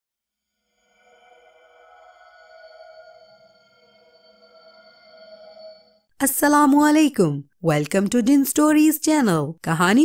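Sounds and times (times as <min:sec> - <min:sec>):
synthesizer drone: 0:00.5 - 0:06.2.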